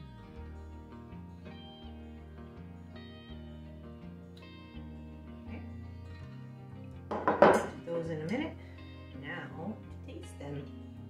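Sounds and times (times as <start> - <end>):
background music: 0.0 - 11.0
metal bowl clattering on counter: 7.1 - 7.8.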